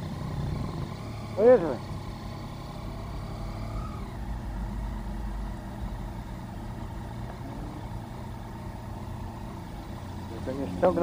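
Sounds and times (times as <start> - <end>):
motorcycle engine at low revs: 0.0 - 11.0.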